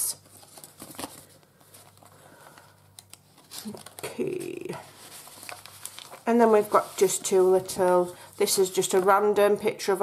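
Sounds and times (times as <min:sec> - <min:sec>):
paper rustling: 0:00.2 - 0:09.3.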